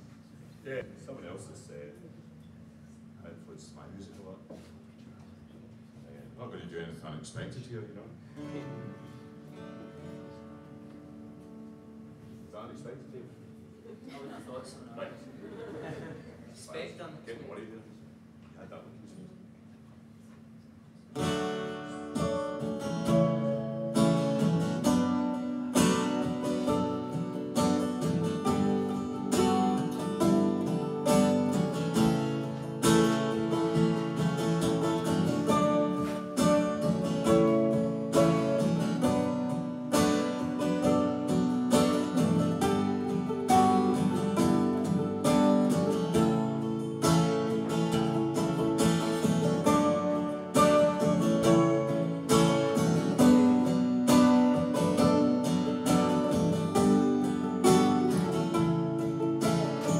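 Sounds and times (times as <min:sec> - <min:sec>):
acoustic guitar strumming: 0:21.1 - 0:59.9
mandolin picking: 0:21.2 - 0:59.9.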